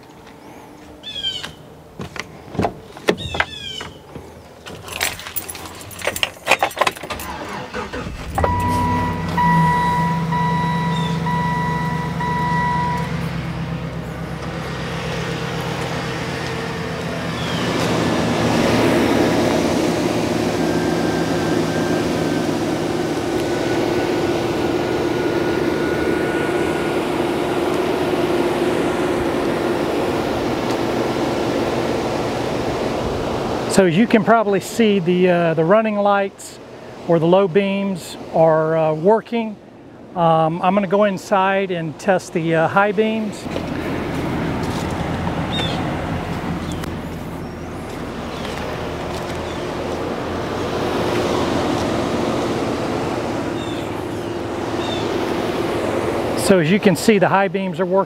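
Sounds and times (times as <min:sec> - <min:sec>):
truck engine starting and idling: 0:00.0 - 0:58.0
car door and keys clicking: 0:02.2 - 0:07.3
chime beeping: 0:08.4 - 0:13.4.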